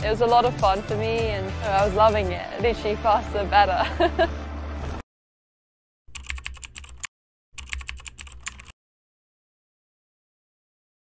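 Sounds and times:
rapid keyboard key clacks: 6.1 - 8.8.

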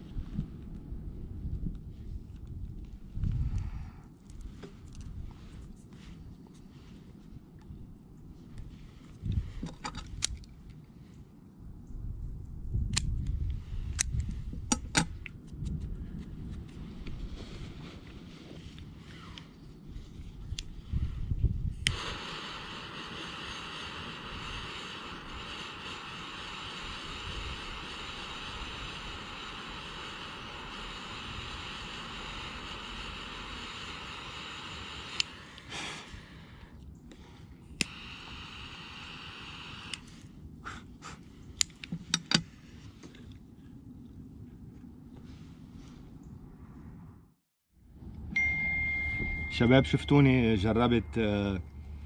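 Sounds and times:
torch lighter click: 12.9 - 15.1, 21.8 - 35.7, 37.8 - 40.2
torch lighter hissing: 21.7 - 36.8, 37.8 - 41.9.

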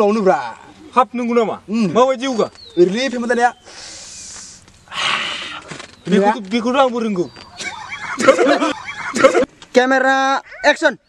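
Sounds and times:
soft breathy hiss: 3.4 - 5.9
breathy burst: 3.6 - 5.8.

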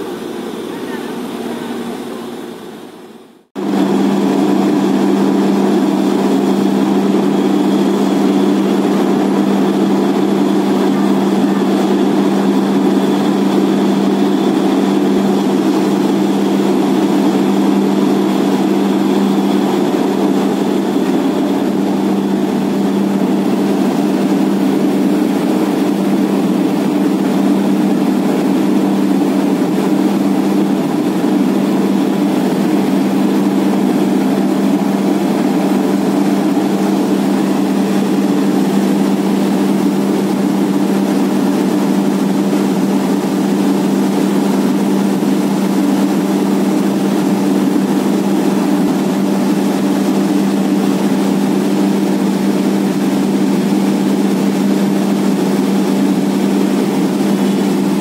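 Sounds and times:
heavy diesel engine running: 0.0 - 58.0.

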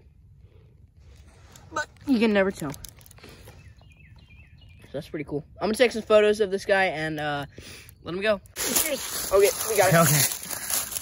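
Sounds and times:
bird chirping: 3.2 - 9.9.

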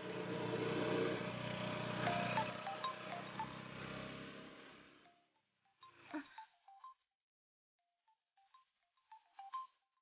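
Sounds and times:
bell-like chime notes: 1.8 - 4.4.

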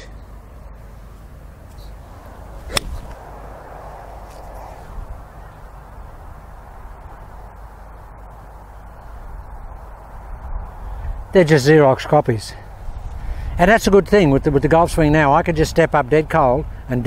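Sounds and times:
wind on microphone: 2.1 - 7.5
golf club striking ball: 2.6 - 3.3.

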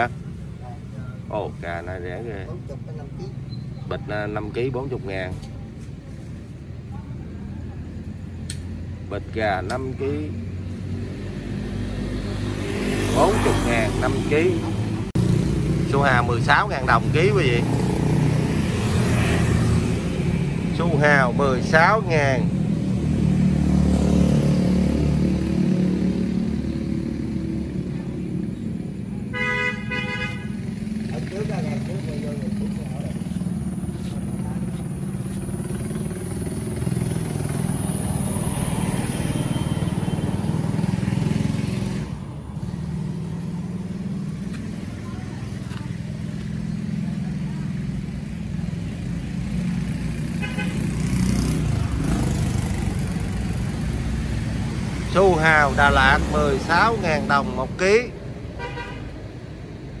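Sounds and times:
vehicle engines rumbling: 0.0 - 60.0
vehicle horn honking: 29.3 - 30.6, 50.4 - 50.9, 58.6 - 59.2.

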